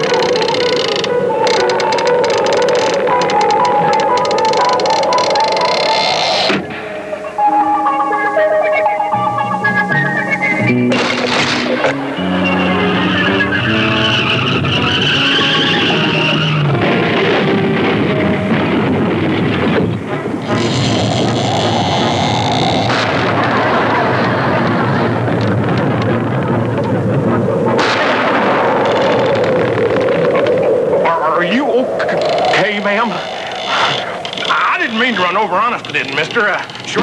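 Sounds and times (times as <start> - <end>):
soundtrack music with held notes: 0.0 - 28.6.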